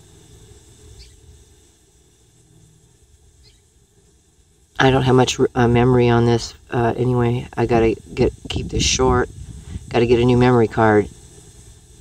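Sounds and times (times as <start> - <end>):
low steady rumble: 0.0 - 12.0
faint high chirps: 0.2 - 4.2.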